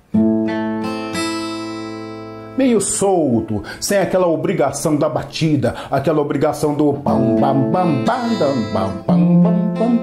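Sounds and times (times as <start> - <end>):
acoustic guitar chord: 0.1 - 2.6, 7.1 - 10.0.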